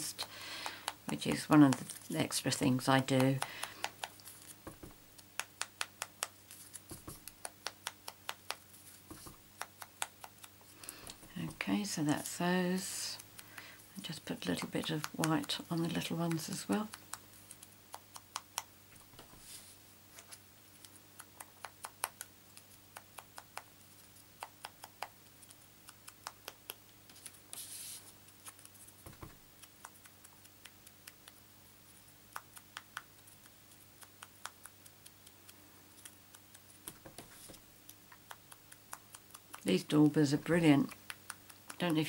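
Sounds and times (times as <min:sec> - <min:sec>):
low electrical hum: 0:00.0 - 0:42.0
sponge dauber tapping: 0:00.6 - 0:12.4, 0:36.8 - 0:42.0.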